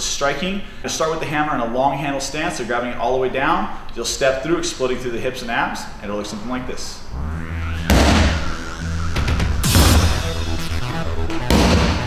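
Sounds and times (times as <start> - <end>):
music with heavy bass: 7.1 - 12.0.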